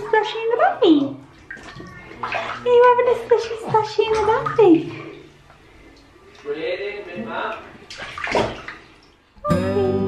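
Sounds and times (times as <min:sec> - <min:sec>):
bathwater splashing: 0:00.0 - 0:09.4
soft plucked-string music: 0:09.4 - 0:10.0.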